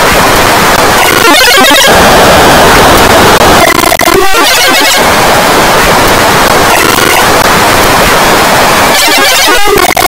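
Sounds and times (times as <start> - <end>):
distorted cartoon soundtrack: 0.0 - 10.0.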